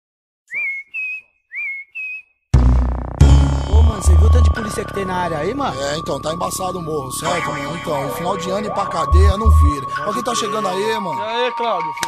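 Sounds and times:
person whistling two-note call: 0.5s - 2.3s.

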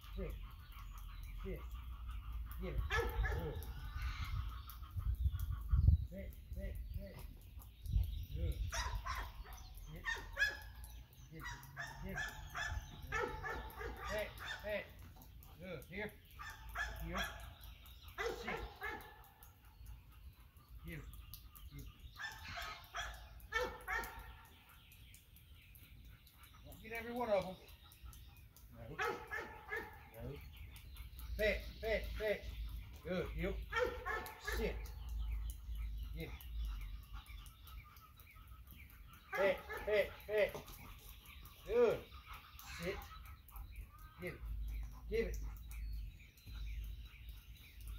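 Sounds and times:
distant dogs barking: 0.0s - 6.9s, 8.3s - 47.9s
wind rumbling on microphone: 2.8s - 9.4s.

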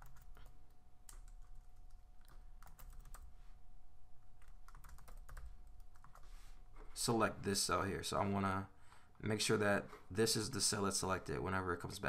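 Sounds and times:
computer keyboard typing: 0.0s - 3.3s, 4.4s - 6.2s.

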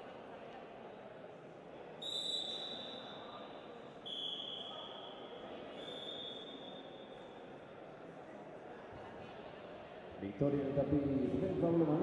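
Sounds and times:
murmur of hall noise: 0.0s - 12.0s
referee's whistle blasts: 2.0s - 3.3s, 4.0s - 5.2s, 5.8s - 6.8s.

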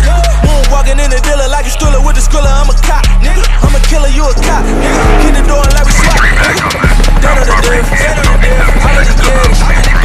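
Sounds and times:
hip hop music: 0.0s - 10.0s
car engine revving: 3.3s - 8.1s.

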